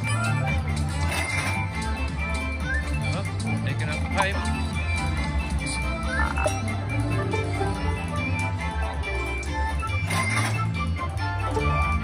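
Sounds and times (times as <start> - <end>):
slot machine game music: 0.0 - 12.0.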